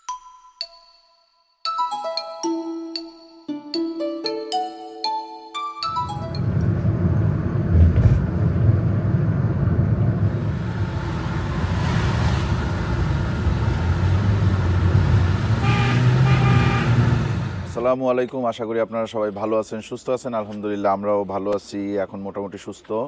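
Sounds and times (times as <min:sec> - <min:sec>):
vehicle road and engine rumble: 0:05.9 - 0:18.0
vehicle horn: 0:15.5 - 0:17.5.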